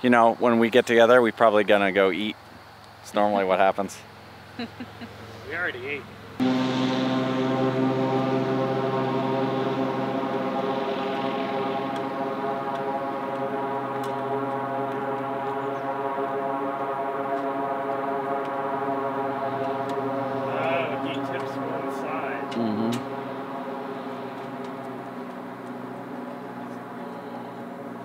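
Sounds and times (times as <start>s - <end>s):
propeller plane engine drone: 5.2s - 28.0s.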